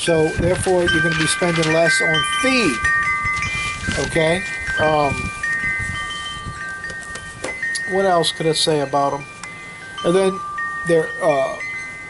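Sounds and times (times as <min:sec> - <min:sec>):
chimes ringing: 0:00.4 - 0:12.0.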